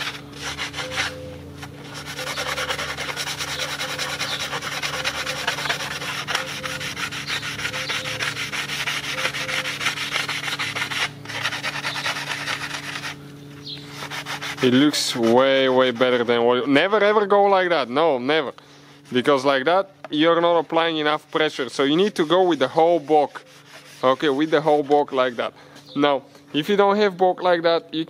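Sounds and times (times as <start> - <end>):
sandpaper rubbing on metal: 0.0 - 17.5, 18.9 - 25.5.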